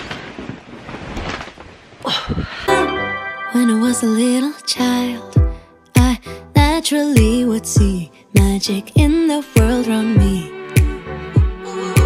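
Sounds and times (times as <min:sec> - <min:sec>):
background music: 0:02.7 - 0:12.0.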